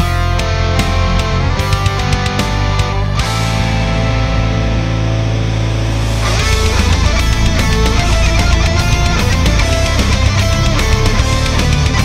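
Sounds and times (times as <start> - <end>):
distorted electric guitar chord: 0.0 - 12.0
low bass: 0.0 - 12.0
symphonic metal music: 0.0 - 12.0.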